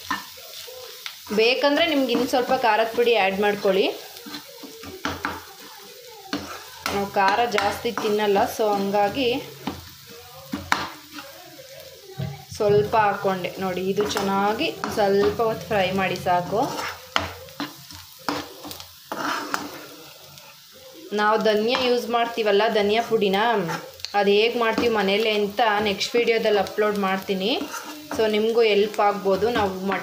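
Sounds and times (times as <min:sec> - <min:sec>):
spoon scraping pan: 0:00.0 - 0:20.8, 0:21.4 - 0:30.0
light sizzle of frying: 0:00.0 - 0:30.0.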